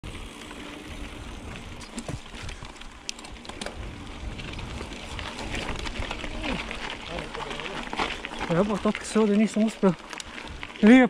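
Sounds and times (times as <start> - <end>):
bike clicks and rattles: 0.0 - 11.0
bike tyre and drivetrain noise: 0.0 - 11.0
wind rumble on microphone: 3.6 - 7.1.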